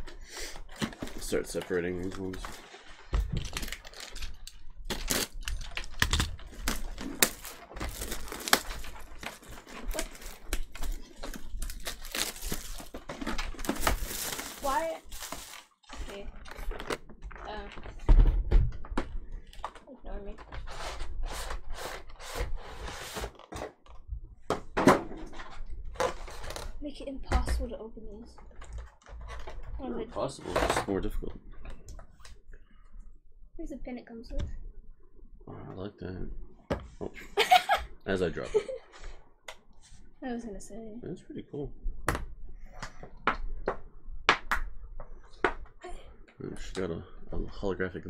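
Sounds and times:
cardboard and plastic packaging handled: 0.0s - 24.0s, 25.2s - 26.8s.

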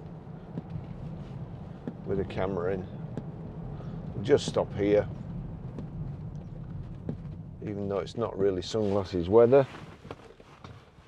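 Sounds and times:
car cabin low hum: 0.0s - 11.0s.

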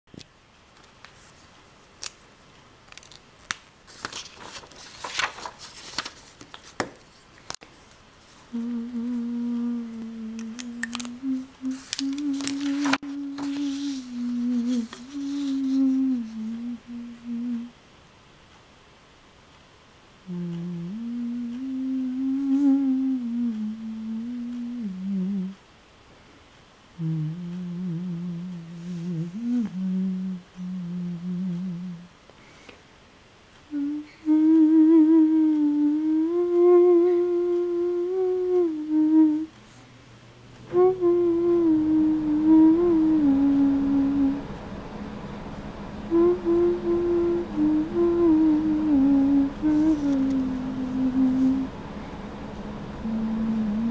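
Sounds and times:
person humming: 8.5s - 17.8s, 20.2s - 25.6s, 27.0s - 32.2s, 33.7s - 39.7s, 40.6s - 44.5s, 46.0s - 51.8s, 52.9s - 53.9s.

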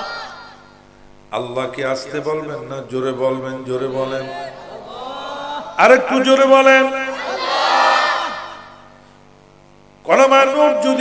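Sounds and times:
congregation calling out in unison: 0.0s - 9.0s.

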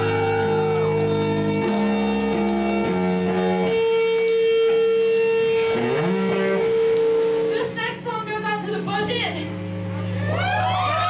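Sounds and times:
heavy riff on bass and guitar: 0.0s - 11.0s.

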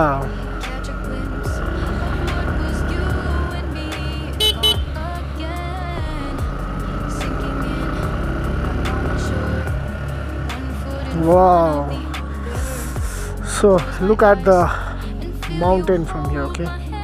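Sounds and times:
motorcycle engine running: 0.0s - 16.4s
road and wind noise: 0.0s - 17.0s
horn toots: 4.3s - 5.2s.

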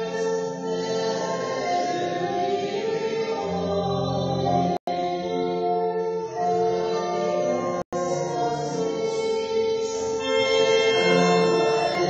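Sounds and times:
voices singing: 0.0s - 12.0s
pipe organ chords: 9.6s - 12.0s.

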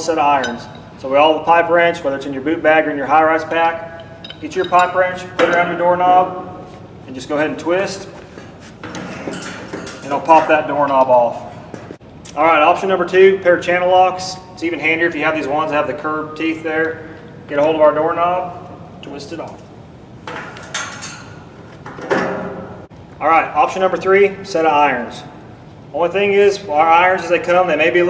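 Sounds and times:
sharp metal clank: 3.9s - 5.8s.

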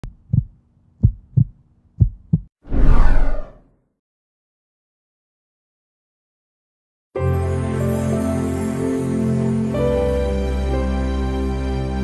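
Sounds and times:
heartbeat double thumps: 0.0s - 2.5s
whoosh: 2.7s - 3.6s.

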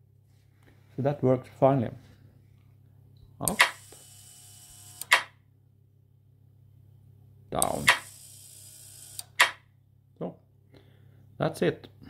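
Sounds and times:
relay clicks: 7.6s - 8.1s.

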